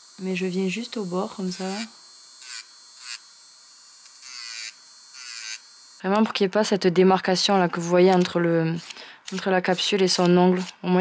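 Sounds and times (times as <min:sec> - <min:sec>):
electric nail drill whine: 0:00.0 - 0:06.6
sanding band rasping on nail: 0:07.4 - 0:10.9.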